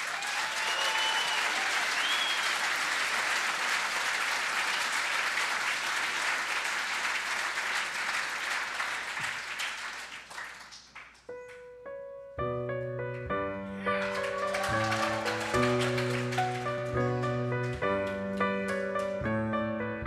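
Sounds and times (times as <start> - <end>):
audience applauding: 0.0 - 11.6, 13.8 - 19.2.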